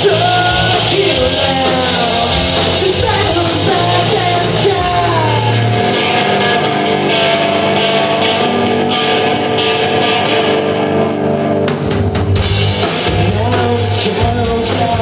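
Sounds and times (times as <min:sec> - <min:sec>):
bass guitar: 0:00.0 - 0:15.0
drum kit: 0:00.0 - 0:15.0
electric guitar chords: 0:00.0 - 0:15.0.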